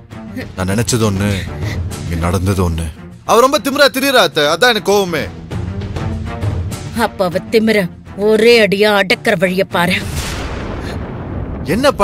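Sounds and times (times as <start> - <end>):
dramatic boom hit: 10.0 - 12.0.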